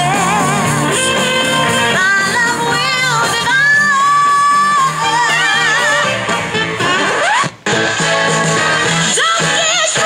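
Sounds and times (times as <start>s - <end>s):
pop backing track: 0.0s - 10.0s.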